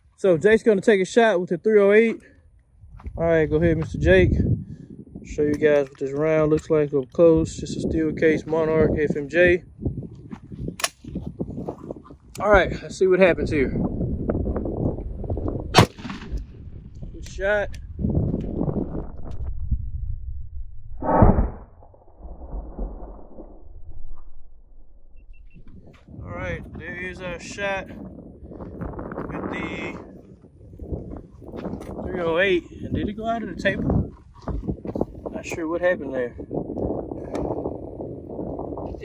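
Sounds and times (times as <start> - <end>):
wind rumbling on microphone: 2.4 - 39.0
slowed rifle shot boom: 15.7 - 16.8, 18.6 - 25.9.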